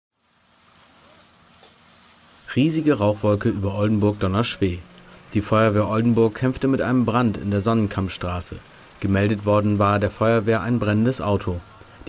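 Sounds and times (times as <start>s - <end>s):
water hose hissing: 0.2s - 12.0s.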